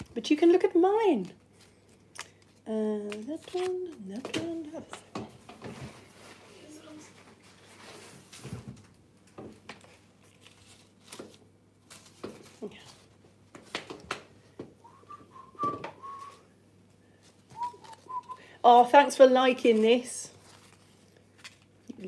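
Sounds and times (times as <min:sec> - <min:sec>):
person whistling softly: 0:14.8 - 0:16.5, 0:17.5 - 0:18.6.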